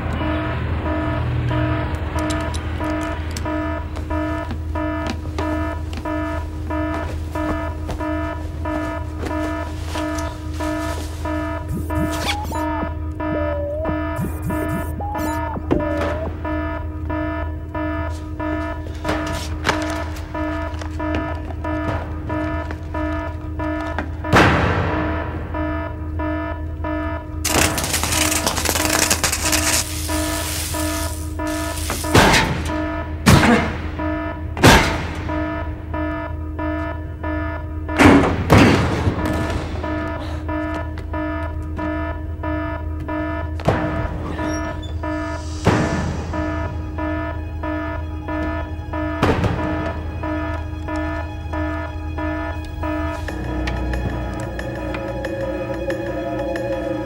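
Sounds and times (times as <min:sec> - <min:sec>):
tense background music: 0:00.0 - 0:57.0
swooping effect: 0:10.2 - 0:16.9.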